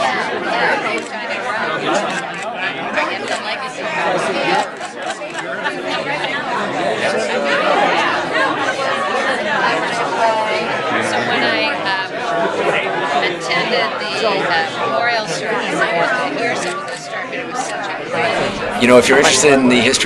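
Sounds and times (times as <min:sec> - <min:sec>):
crowd chatter: 0:00.0 - 0:20.0
people talking at once: 0:00.0 - 0:20.0.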